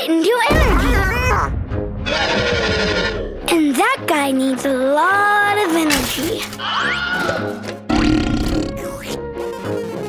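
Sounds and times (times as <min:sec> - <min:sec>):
background music: 0:00.0 - 0:10.0
cartoon monster burp: 0:07.9 - 0:09.0.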